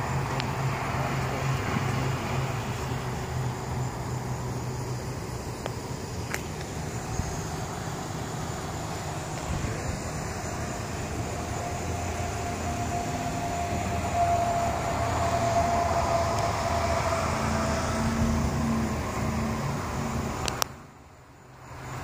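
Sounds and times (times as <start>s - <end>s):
held whine: 0.0s - 22.0s
passing vehicle engine hum: 0.0s - 22.0s
road traffic hum: 0.0s - 22.0s.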